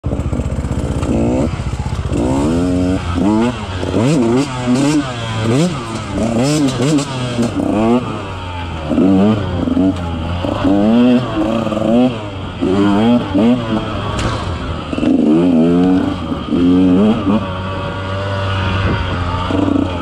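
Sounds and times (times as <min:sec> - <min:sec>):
dirt bike engine revving: 0:00.0 - 0:20.0.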